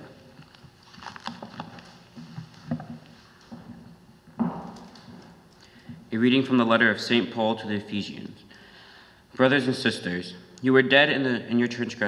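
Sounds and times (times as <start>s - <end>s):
faint knocks and rustles: 0.3s - 6.1s.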